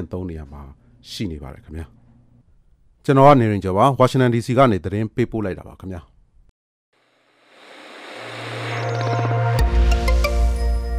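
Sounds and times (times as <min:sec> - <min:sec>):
low steady hum: 0:00.0 - 0:03.6.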